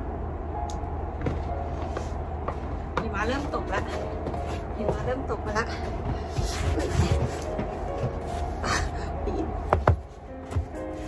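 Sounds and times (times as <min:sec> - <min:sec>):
boots crunching through snow: 0:02.0 - 0:08.6.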